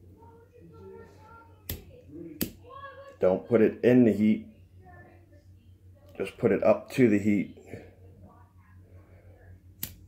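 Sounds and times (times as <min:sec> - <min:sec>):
lighter click: 0:09.8 - 0:10.0.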